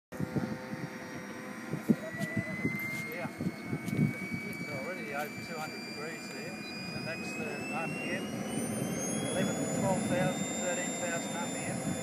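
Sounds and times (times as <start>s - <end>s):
jet turbine engine whine: 0.1s - 12.0s
high whistling tones: 1.8s - 12.0s.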